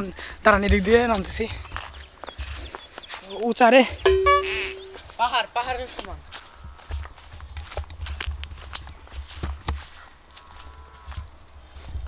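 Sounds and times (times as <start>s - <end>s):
footsteps on dirt path: 0.5s - 3.6s, 5.8s - 12.0s.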